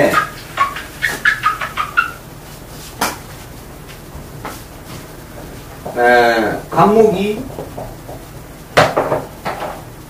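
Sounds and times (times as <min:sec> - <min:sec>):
whiteboard eraser squeaking: 0:00.0 - 0:03.2
eraser rubbing on board: 0:00.0 - 0:03.5.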